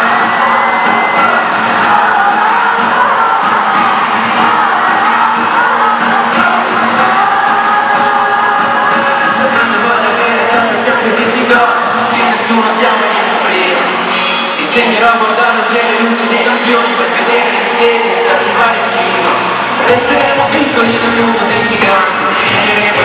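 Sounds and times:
crowd singing and cheering: 0.0 - 23.0
live pop band playing: 0.0 - 23.0.

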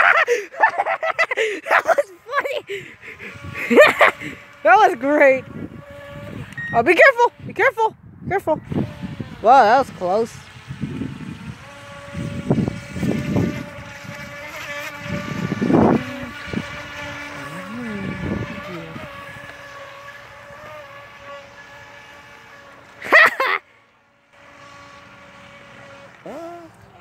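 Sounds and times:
toy boat motor whining: 0.0 - 27.0
wind gusts on microphone: 5.3 - 19.5.

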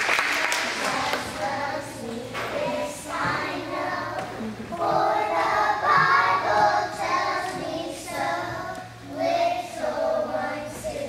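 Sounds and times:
children singing in unison: 0.5 - 11.0.

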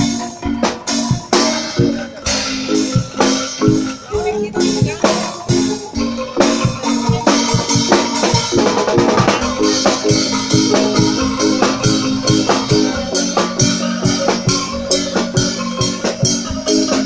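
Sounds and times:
bamboo xylophones playing melody: 0.0 - 17.0
drum kit fast beat: 0.0 - 17.0.

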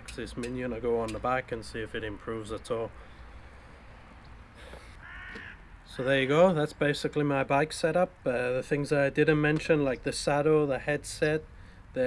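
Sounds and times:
bird call: 4.7 - 5.6.

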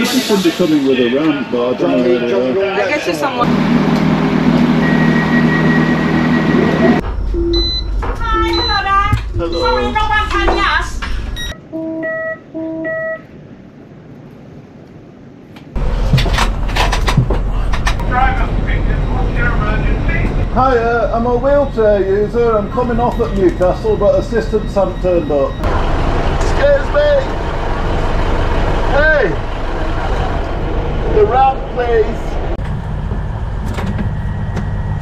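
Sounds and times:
train engine rumble: 0.0 - 11.6, 13.2 - 35.0.

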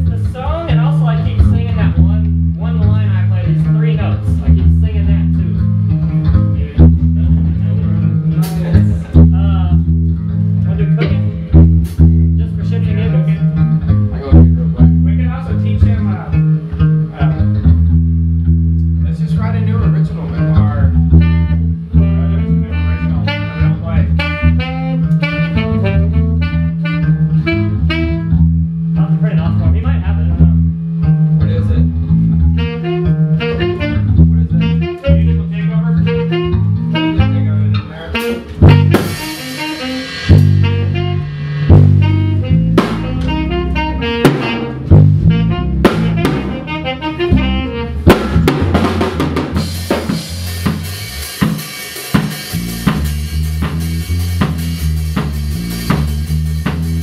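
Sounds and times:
electric bass line: 0.0 - 57.0
electric guitar: 19.8 - 28.9, 30.6 - 57.0
keyboard playing: 38.2 - 50.9.

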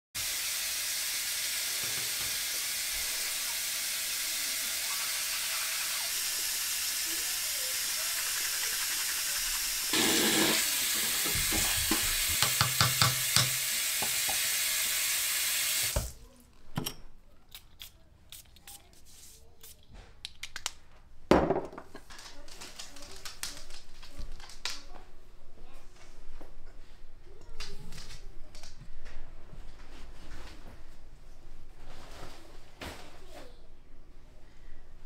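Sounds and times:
shower running: 0.2 - 16.2.

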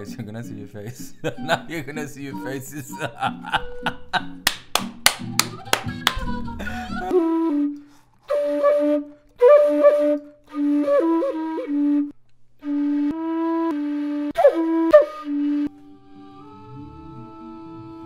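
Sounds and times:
wooden flute playing low notes: 6.2 - 18.0.

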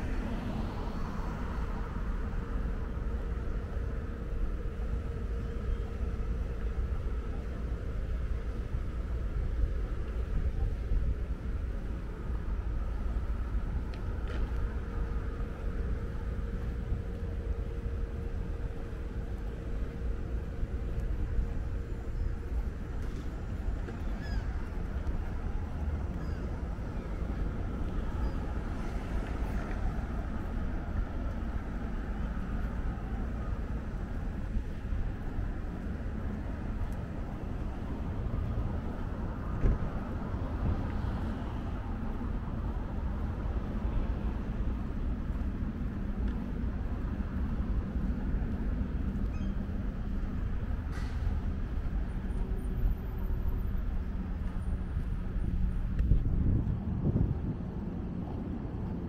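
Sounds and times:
distant road traffic: 0.0 - 59.0
wind on microphone: 54.1 - 59.0.

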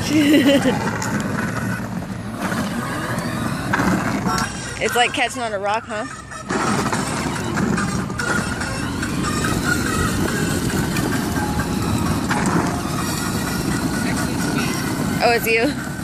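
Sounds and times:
toy jeep rolling over asphalt: 0.0 - 16.0.

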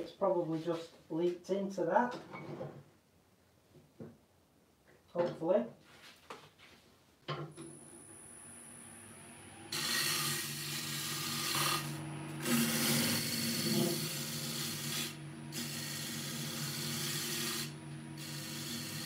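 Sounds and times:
lathe motor humming: 8.1 - 19.0
tool scraping spinning wood: 9.7 - 19.0.

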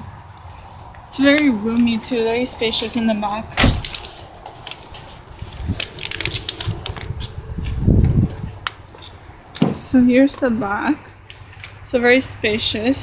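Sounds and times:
dull thump: 3.6 - 3.9, 9.6 - 9.9.

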